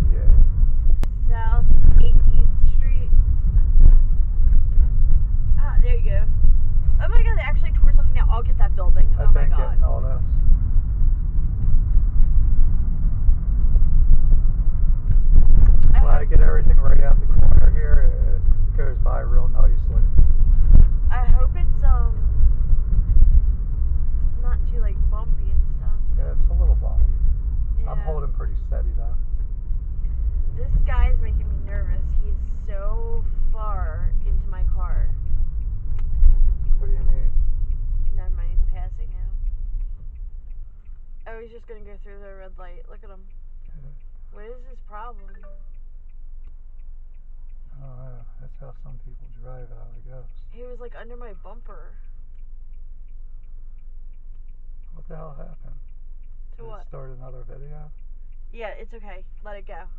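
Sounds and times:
people talking: 0.0s - 0.3s, 1.1s - 3.1s, 5.6s - 6.3s, 7.0s - 10.4s, 15.8s - 20.1s, 21.1s - 22.2s, 24.4s - 27.0s, 27.8s - 29.2s, 30.6s - 35.1s, 36.8s - 37.3s, 38.2s - 39.3s, 41.3s - 45.6s, 47.7s - 51.9s, 54.9s - 55.8s, 56.6s - 57.9s, 58.6s - 59.9s
car road and engine rumble: 0.0s - 59.9s.

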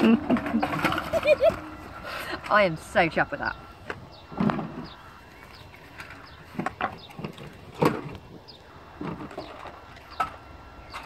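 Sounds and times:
knocks and clatters of objects: 0.0s - 1.7s, 3.8s - 8.4s, 9.0s - 11.0s
small birds chirping: 0.5s - 11.0s.

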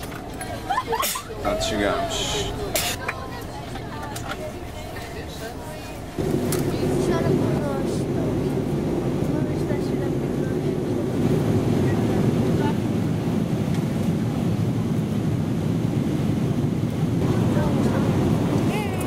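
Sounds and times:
airliner cabin roar: 0.0s - 19.0s.

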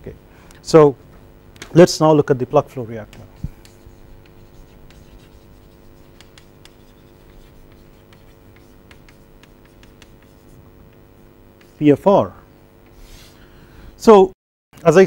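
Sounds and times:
faint hum: 0.0s - 15.0s
chalk scratching on blackboard: 3.2s - 12.0s, 12.9s - 13.4s.

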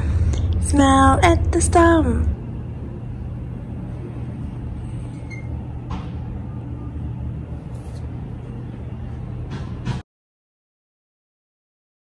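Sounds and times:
low rumble: 0.0s - 9.5s.

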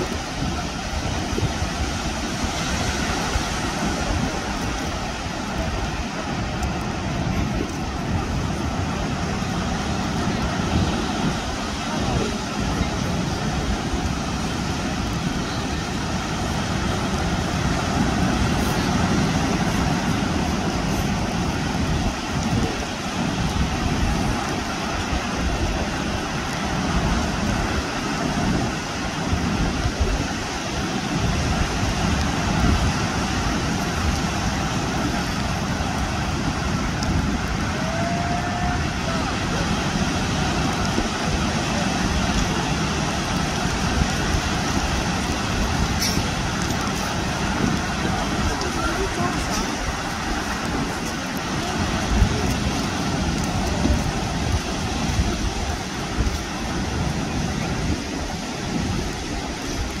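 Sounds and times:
surf breaking on shore: 0.0s - 60.0s.

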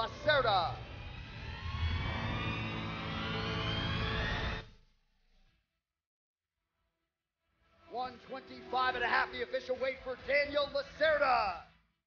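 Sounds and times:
jet aircraft flying over: 0.1s - 4.7s.

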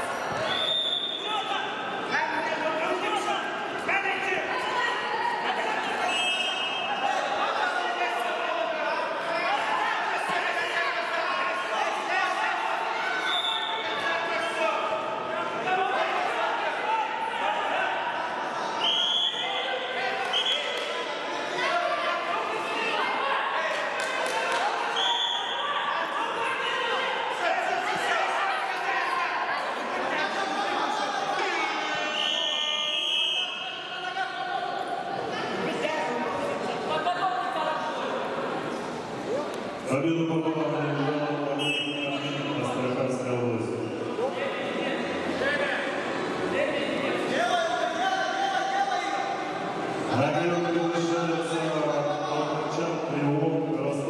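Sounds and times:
hum of voices in a hall: 0.0s - 54.0s
people talking and calling out: 0.0s - 54.0s
referee's whistle blast: 32.0s - 33.7s, 41.6s - 42.6s.

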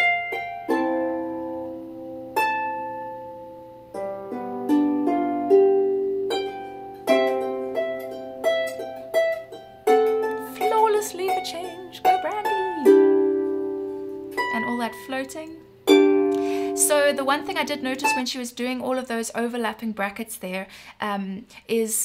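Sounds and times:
harp plucked notes and chords: 0.0s - 18.2s.

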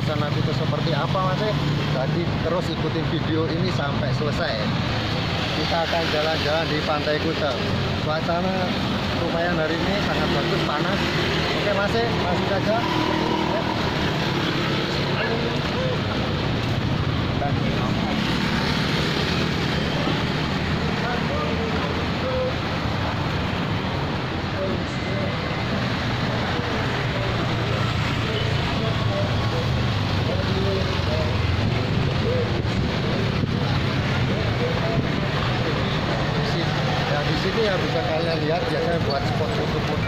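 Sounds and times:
indistinct voices: 0.0s - 40.0s
street traffic noise: 0.0s - 40.0s.

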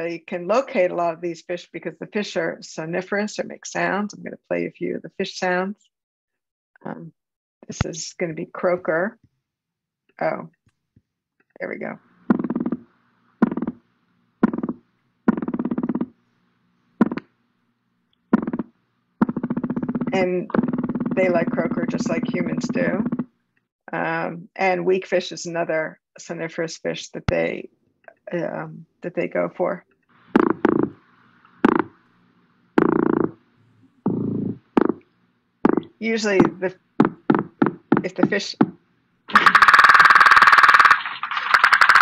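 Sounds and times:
faint recording hiss: 11.6s - 19.2s, 20.1s - 37.4s
fish drumming knocking pulses: 12.3s - 13.8s, 14.4s - 16.2s, 18.3s - 23.3s, 30.3s - 31.0s, 31.6s - 32.0s, 34.1s - 35.0s, 35.6s - 42.0s
fish croaking calls: 39.3s - 42.0s.

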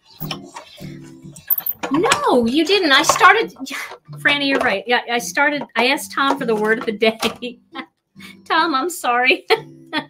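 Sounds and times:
person speaking: 1.5s - 7.5s.

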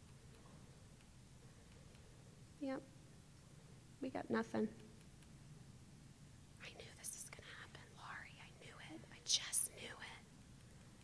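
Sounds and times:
faint low hum: 0.0s - 11.0s
woman speaking softly: 2.6s - 2.9s.

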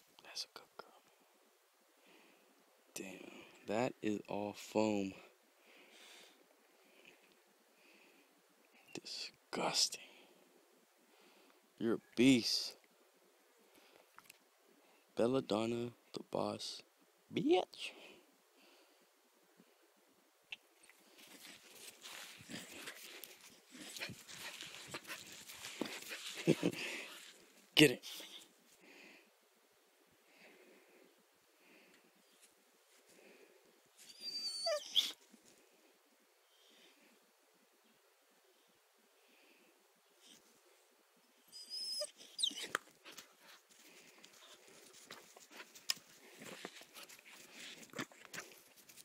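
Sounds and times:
puppy scuffling and breathing: 21.0s - 28.8s, 42.6s - 49.0s
puppy whining: 34.0s - 35.2s, 41.4s - 42.8s
puppy whimpering: 34.1s - 35.2s, 41.4s - 42.8s.

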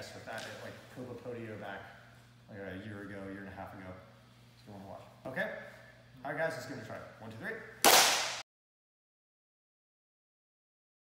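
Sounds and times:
loud hand clap: 7.8s - 8.4s.

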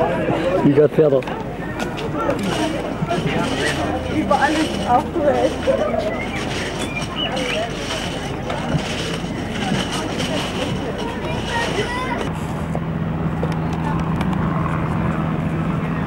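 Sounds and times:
chatter of voices: 0.0s - 12.4s
steady low hum: 0.0s - 16.0s.

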